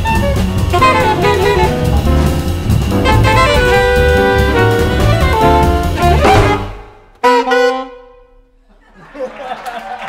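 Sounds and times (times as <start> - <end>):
jazz band playing: 0.0 - 8.4
final band chord ringing: 0.7 - 7.0.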